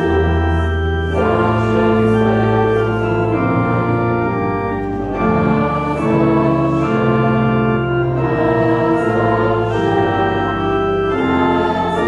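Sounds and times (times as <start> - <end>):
voices singing along: 0.0 - 4.0, 5.2 - 12.0
church organ playing hymn chords: 0.0 - 12.0.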